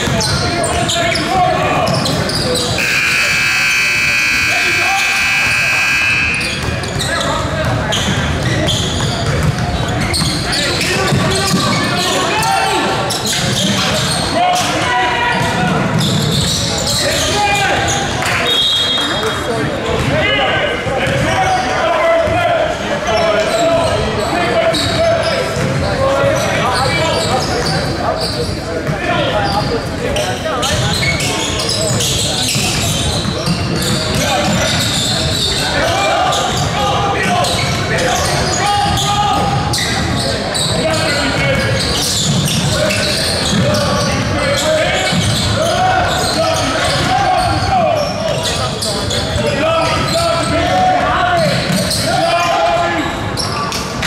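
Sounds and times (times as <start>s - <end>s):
crowd chatter: 0.0s - 54.0s
shoes squeaking and player voices: 0.0s - 54.0s
scoreboard buzzer: 2.8s - 6.6s
basketball bouncing on hardwood: 9.0s - 10.3s.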